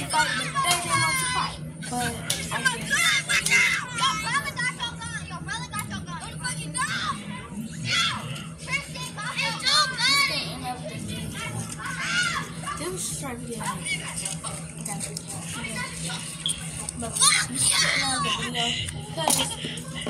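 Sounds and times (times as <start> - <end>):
children shouting and yelling: 0.0 - 1.6, 2.3 - 14.3, 17.0 - 18.5
steady low hum: 0.0 - 20.0.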